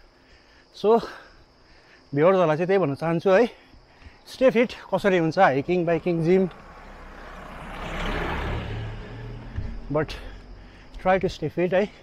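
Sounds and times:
car driving past: 0:04.9 - 0:11.0.

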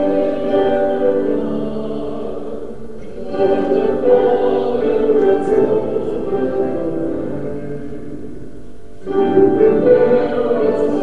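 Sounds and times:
choir singing sustained notes: 0:00.0 - 0:11.0.

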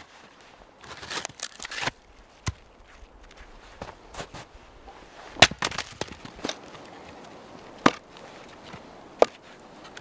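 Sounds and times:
axe splitting log: 0:05.3 - 0:06.8, 0:07.8 - 0:08.1
split wood knocking: 0:07.8 - 0:08.0.

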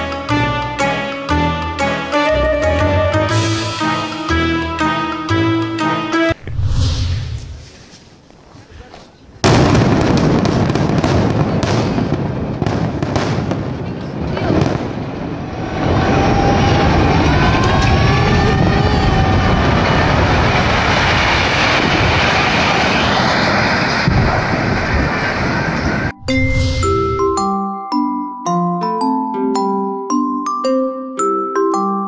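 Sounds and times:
explosive blast: 0:06.4 - 0:07.6, 0:09.4 - 0:13.8, 0:14.4 - 0:27.4
collapsing tower rumble: 0:14.4 - 0:27.4
people shouting: 0:15.6 - 0:20.3.

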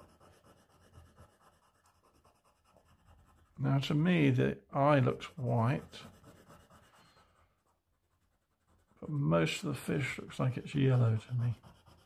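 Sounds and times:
oil pastel rubbing on paper: 0:00.0 - 0:03.6, 0:05.3 - 0:12.0.

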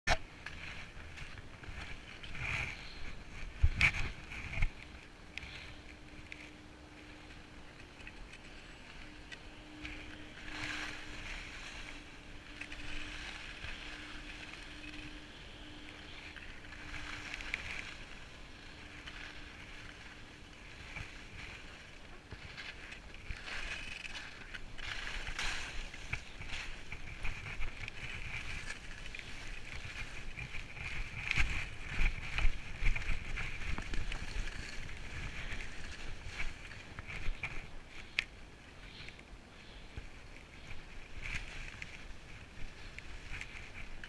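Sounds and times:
skis sliding over snow: 0:00.1 - 0:44.0
wind on microphone: 0:00.1 - 0:44.0.

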